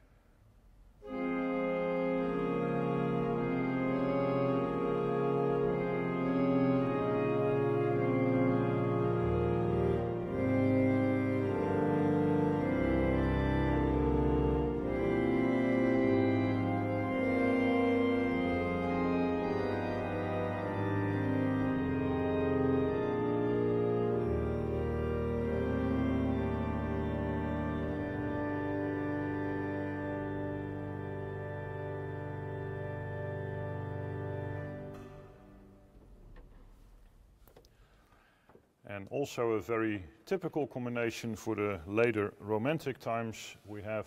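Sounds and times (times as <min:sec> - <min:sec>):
deep organ bass notes: 0:01.0 - 0:37.4
pipe organ sustained chords: 0:01.0 - 0:37.4.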